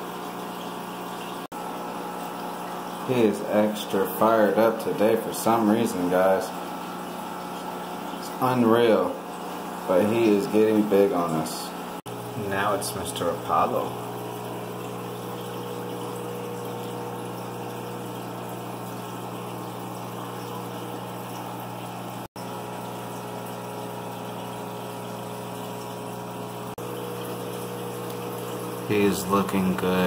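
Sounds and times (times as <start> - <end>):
aquarium pump humming: 0.0 - 30.0.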